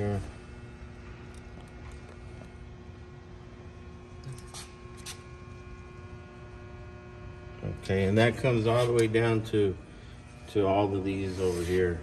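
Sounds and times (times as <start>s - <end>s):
transformer electrical hum: 0.0s - 12.0s.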